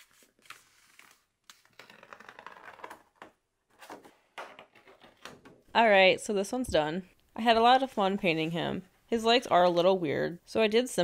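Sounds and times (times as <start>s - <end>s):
paper crackling and rustling: 0.0s - 3.1s.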